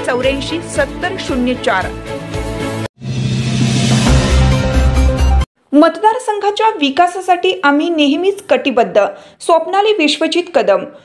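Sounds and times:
deep bass hits: 0:02.4 - 0:05.5
whoosh: 0:03.0 - 0:05.4.

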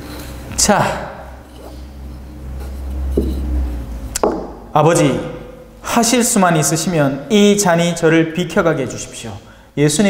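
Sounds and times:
small tap: 0:04.2 - 0:04.5.

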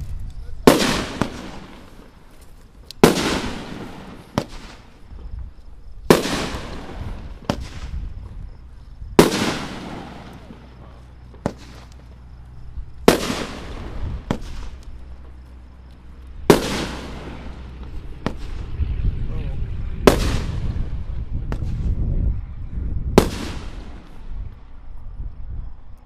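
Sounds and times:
loud aerial firework bursts: 0:00.0 - 0:24.8
low rumble: 0:00.0 - 0:26.0
firework launch pops: 0:00.3 - 0:02.1, 0:02.8 - 0:05.4, 0:06.0 - 0:08.4, 0:09.2 - 0:12.2, 0:13.0 - 0:15.0, 0:16.4 - 0:18.7, 0:20.0 - 0:20.9, 0:21.5 - 0:22.0, 0:23.1 - 0:24.3.

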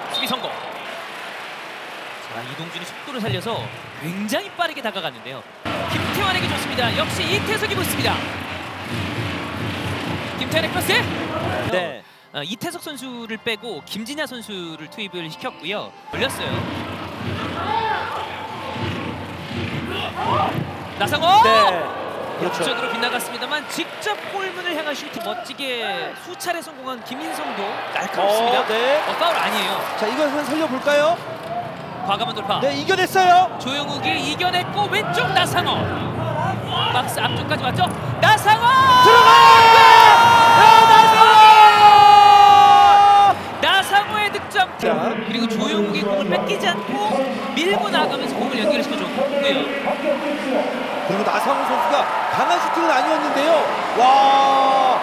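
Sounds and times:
stadium ground noise: 0:00.0 - 0:11.8, 0:16.1 - 0:55.0.

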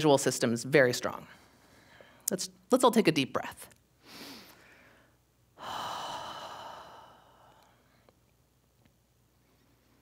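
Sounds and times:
deep breath out: 0:04.0 - 0:08.1.

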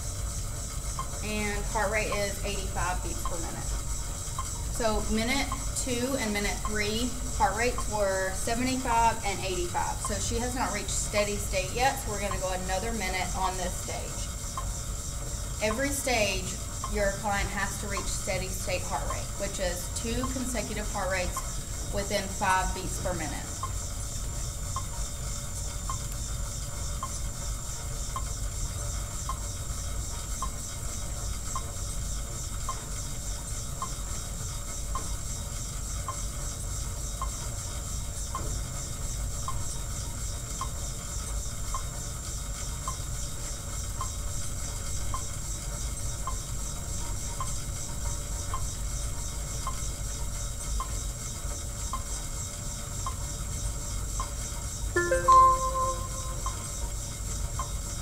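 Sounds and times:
exercise bike whirring: 0:00.0 - 0:55.0, 0:56.0 - 0:58.0
light ticking: 0:00.9 - 0:12.4
short pitched sound: 0:55.0 - 0:56.7.

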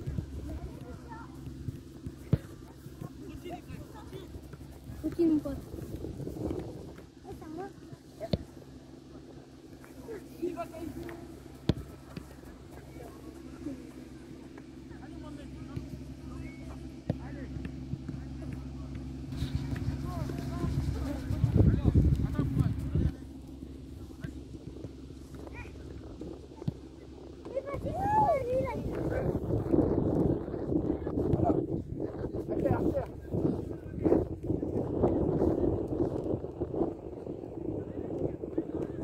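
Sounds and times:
low steady rumble: 0:00.0 - 0:39.0.

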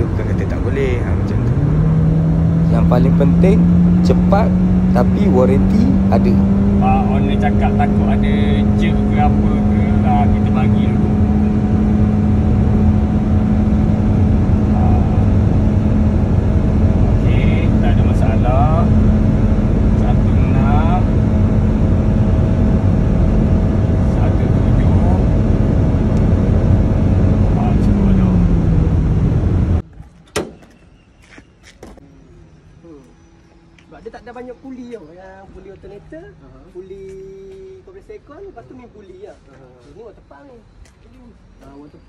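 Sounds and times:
car engine and road noise: 0:00.0 - 0:41.9.

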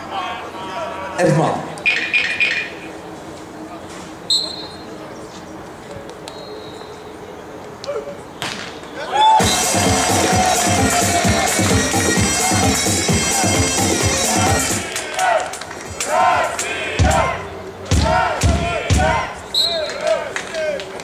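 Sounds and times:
referee's whistle: 0:01.8 - 0:02.7, 0:04.3 - 0:04.9, 0:06.3 - 0:07.0, 0:19.4 - 0:20.1
stadium music with steady beat: 0:09.4 - 0:20.2.

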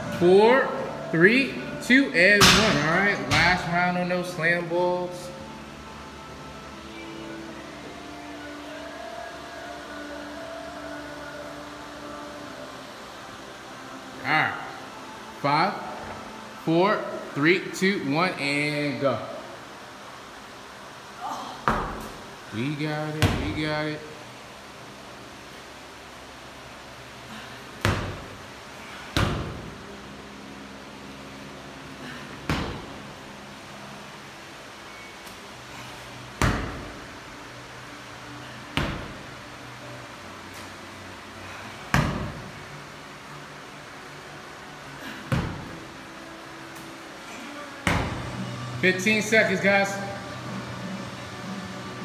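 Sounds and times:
ball thudding on rubber floor: 0:21.6 - 0:22.2, 0:23.2 - 0:23.6, 0:29.2 - 0:29.7, 0:32.5 - 0:33.0, 0:36.4 - 0:37.0, 0:41.9 - 0:42.4, 0:45.3 - 0:45.7, 0:47.8 - 0:48.3.

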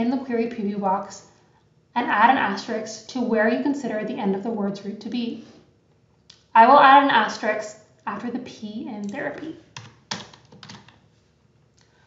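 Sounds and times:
keyboard keystrokes: 0:09.0 - 0:11.0.

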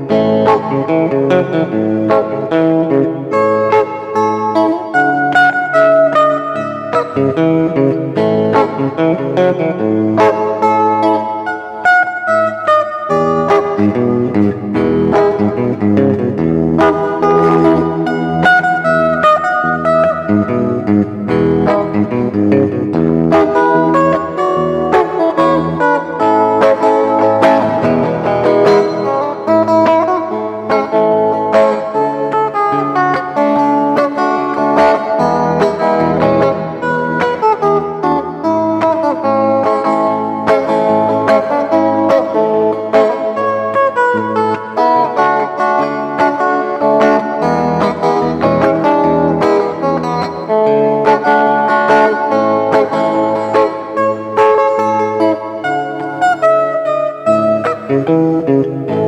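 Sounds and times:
fingerstyle electric guitar: 0:00.0 - 0:59.0.

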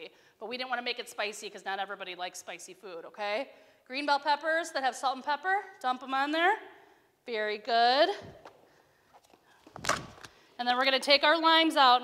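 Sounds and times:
plastic cups rustling clatter: 0:09.1 - 0:10.4.

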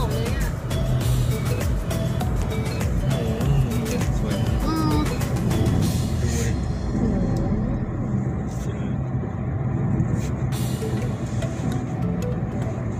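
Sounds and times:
car road and engine noise: 0:00.0 - 0:12.9.

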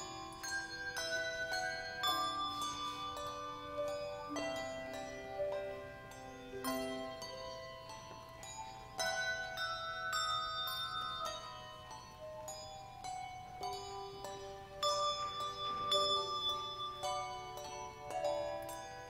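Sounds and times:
handbell choir playing: 0:00.0 - 0:19.0.

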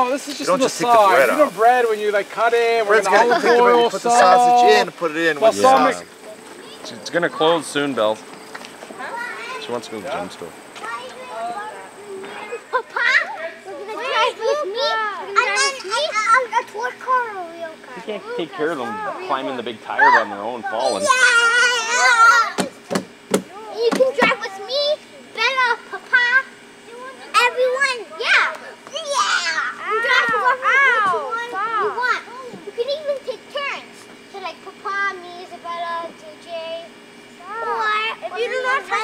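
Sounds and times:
children chattering and calling out: 0:00.0 - 0:39.0.

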